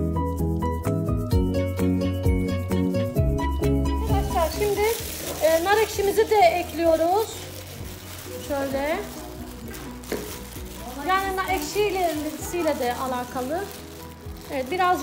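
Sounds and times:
latex gloves squeaking: 4.2s - 15.0s.

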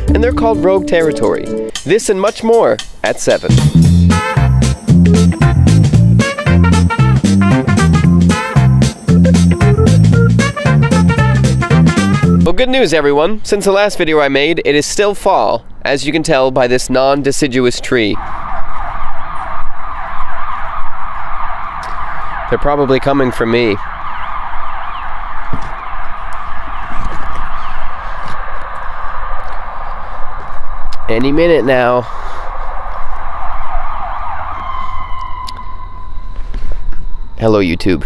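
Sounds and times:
emergency vehicle siren: 17.9s - 38.0s.

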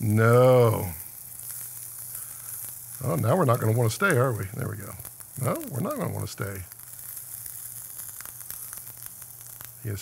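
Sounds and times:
steak sizzling in hot pan: 0.0s - 10.0s.

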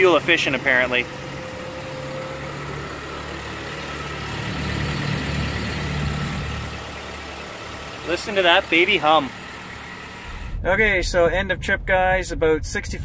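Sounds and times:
car engine humming: 0.0s - 10.6s.

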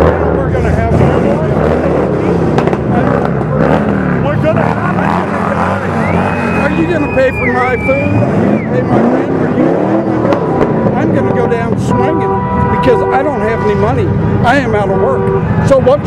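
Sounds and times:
car engines passing: 0.0s - 16.0s
crowd voices: 0.0s - 16.0s
high whistle-like tone: 6.0s - 8.9s.

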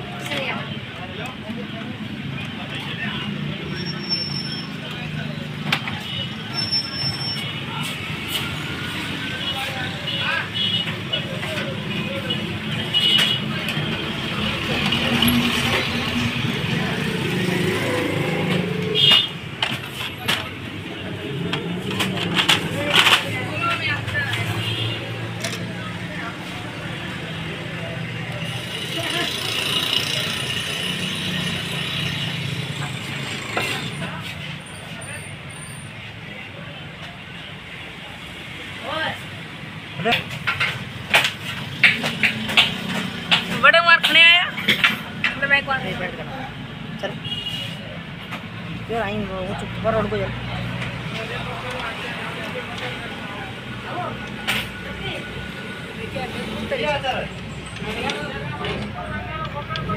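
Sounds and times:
indistinct voices talking: 0.0s - 59.9s.

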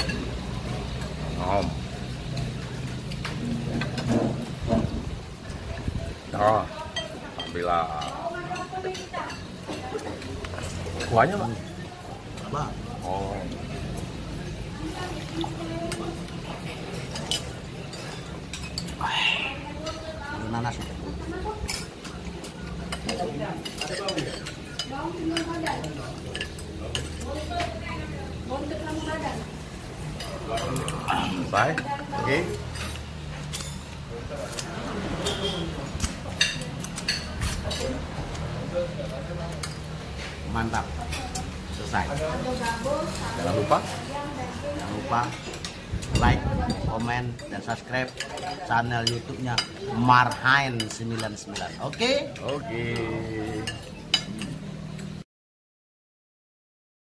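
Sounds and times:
tableware clinking: 0.0s - 5.5s, 15.9s - 19.0s, 19.8s - 27.8s, 30.1s - 38.0s, 44.7s - 55.2s
indistinct low voices: 9.8s - 33.0s.

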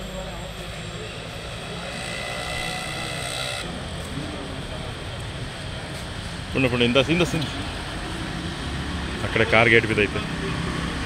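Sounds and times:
high whine: 0.0s - 8.5s
engine-like drone: 0.0s - 11.0s
faint voices: 0.0s - 11.0s.

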